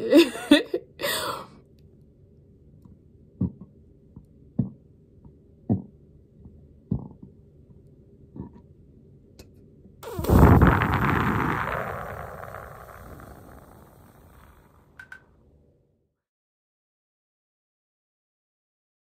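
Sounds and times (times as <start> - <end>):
breathy rush of air: 10.0 - 14.7.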